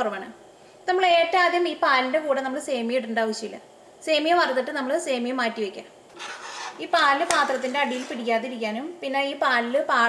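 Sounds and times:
woman talking: 0.0 - 5.9, 6.8 - 10.0
spoon stirring in metal pan: 6.1 - 8.3.

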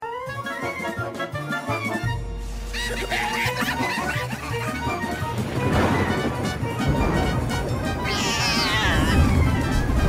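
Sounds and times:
cartoon music: 0.1 - 10.0
cat yowl falling in pitch: 8.1 - 9.4.

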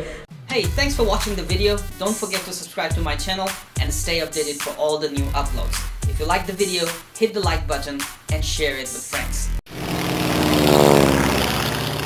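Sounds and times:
propeller plane flying past: 9.7 - 12.0.

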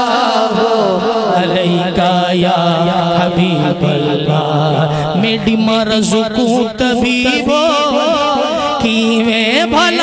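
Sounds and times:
man singing amplified: 0.0 - 10.0.

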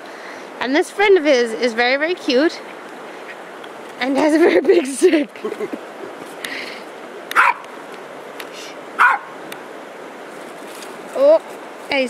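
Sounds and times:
small dog barking: 7.3 - 7.6, 9.0 - 9.4.

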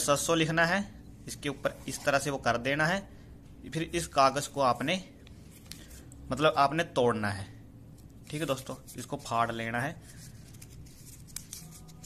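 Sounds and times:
paper handling ticks: 10.2 - 12.0.

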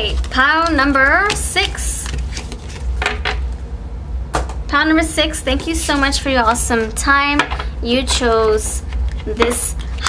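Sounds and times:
cards scraping and tapping: 0.0 - 3.4
steady low hum: 0.0 - 10.0.

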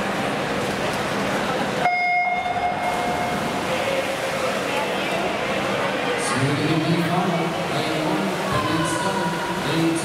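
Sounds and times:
crowd murmur in echoing hall: 0.0 - 10.0.

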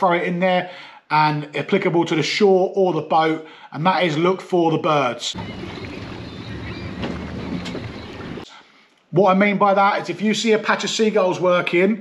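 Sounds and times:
rushing water: 5.4 - 8.4
wind on microphone: 5.4 - 8.4
boat engine hum: 5.4 - 8.5.

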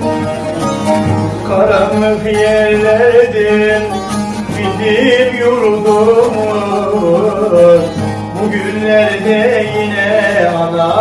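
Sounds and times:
long-necked lutes playing folk melody: 0.0 - 11.0.

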